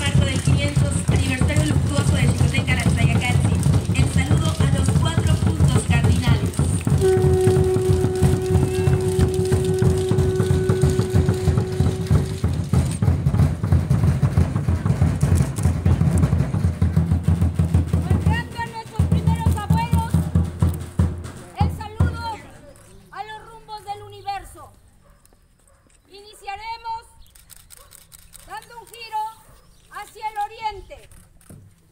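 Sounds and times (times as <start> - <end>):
wooden drum beaten fast: 0.0 - 22.4
long blown note: 6.8 - 13.0.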